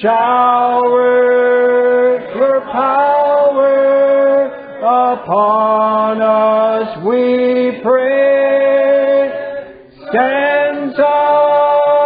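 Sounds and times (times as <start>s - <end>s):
group singing slow hymn: 0.0s - 12.0s.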